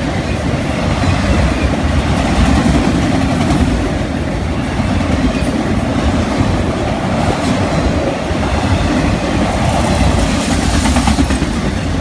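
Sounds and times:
freight train wheels rumbling: 0.0 - 12.0.

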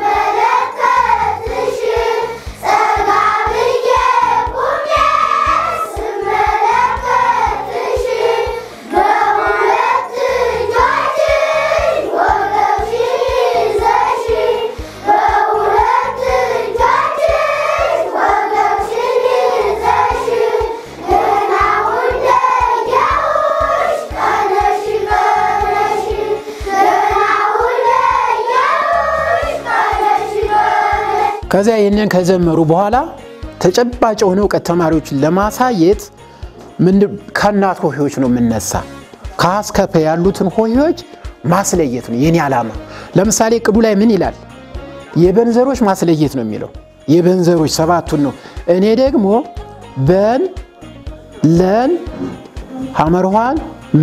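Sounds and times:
children singing in unison: 0.0 - 31.5.

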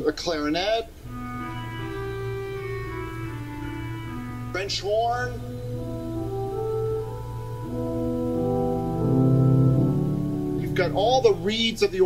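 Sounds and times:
pipe organ reedy notes: 1.0 - 12.0.

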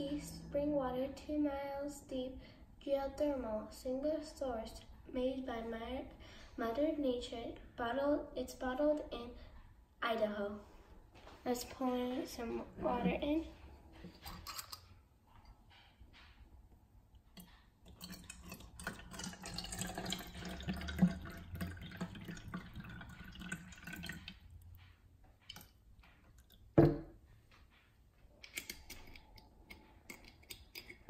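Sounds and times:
water pouring into plastic cup: 17.9 - 24.5
knock on table: 26.8 - 27.1.

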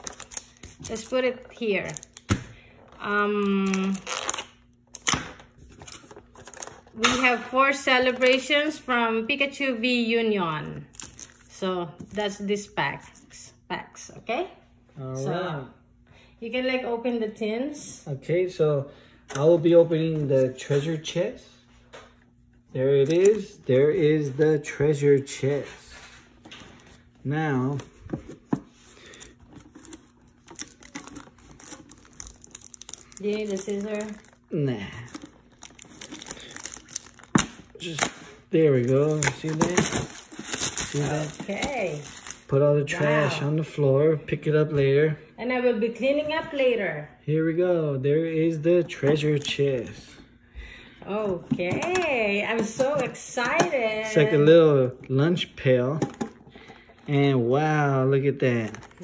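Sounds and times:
foil packs crinkling: 0.0 - 2.3, 3.4 - 7.0, 10.9 - 11.5, 28.8 - 42.6, 58.4 - 59.0.

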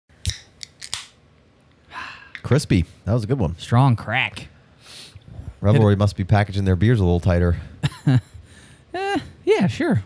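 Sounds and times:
beer can cracking open: 0.2 - 1.2.

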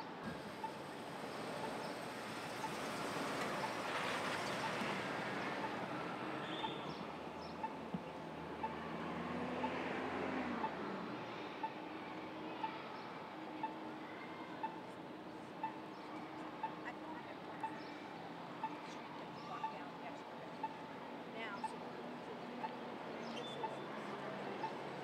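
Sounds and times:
city traffic noise: 0.0 - 25.0
crossing signal ticking: 0.4 - 12.8, 13.4 - 18.0
vehicle engine passing: 8.2 - 11.6.

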